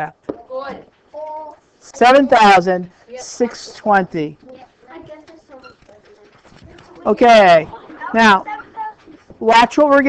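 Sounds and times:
low room noise: 0:00.0 - 0:10.0
voices murmuring: 0:00.4 - 0:10.0.

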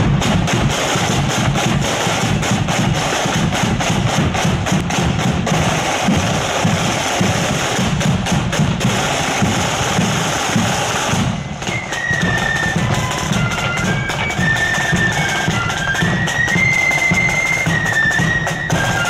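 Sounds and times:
flutes playing a tune: 0:00.0 - 0:19.0
marching drums: 0:00.0 - 0:19.0.

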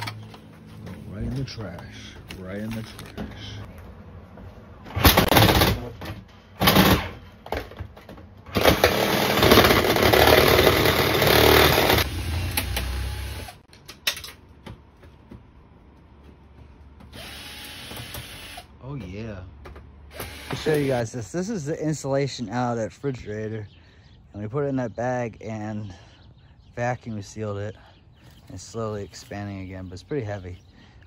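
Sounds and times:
power tool cutting metal: 0:08.6 - 0:13.6.

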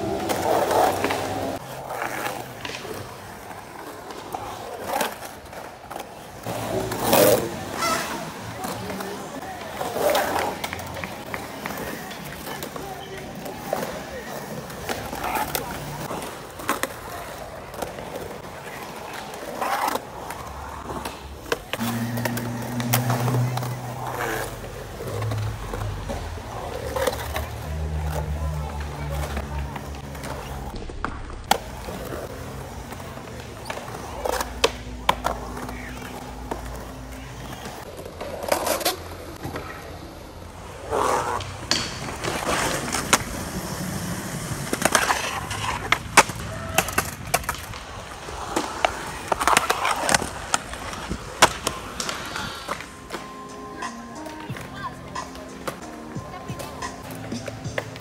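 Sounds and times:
skateboard clacks and knocks: 0:00.0 - 0:40.0, 0:41.2 - 0:58.0
skateboard wheels rolling on concrete: 0:00.0 - 0:58.0.

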